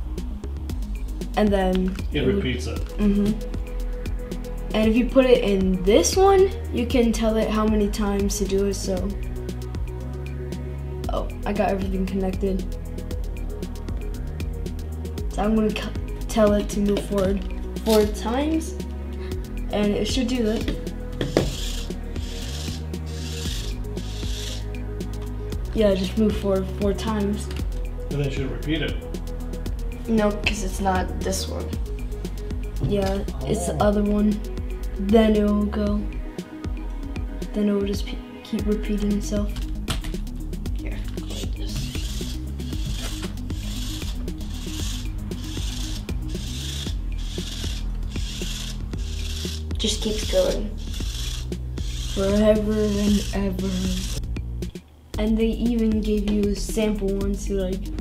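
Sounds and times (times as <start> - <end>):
background music: 0.0 - 58.0
toy robot motors whirring: 20.1 - 24.7, 41.1 - 54.2.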